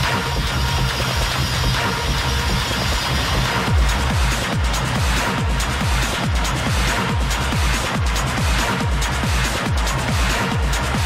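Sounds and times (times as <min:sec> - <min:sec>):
deep pitch-dropping kick drums: 0:00.0 - 0:11.0
techno music with heavy bass: 0:00.0 - 0:11.0.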